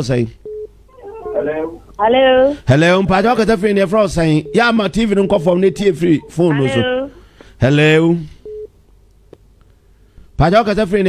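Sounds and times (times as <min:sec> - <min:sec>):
man's voice: 0:02.7 - 0:06.9
telephone line beep: 0:04.3 - 0:07.1, 0:08.4 - 0:08.7.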